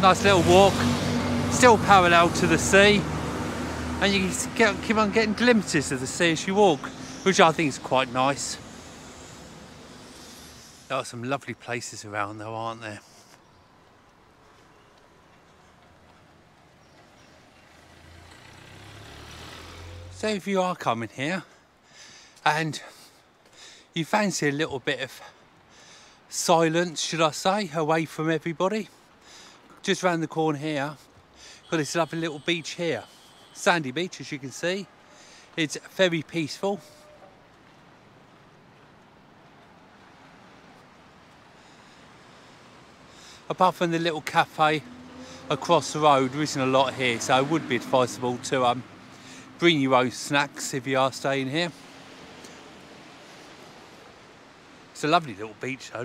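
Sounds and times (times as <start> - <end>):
car engine approaching: 0.0 - 10.8, 14.8 - 20.4, 43.5 - 56.0
faint outdoor hiss by the sea: 0.0 - 56.0
faint street ambience: 0.0 - 56.0.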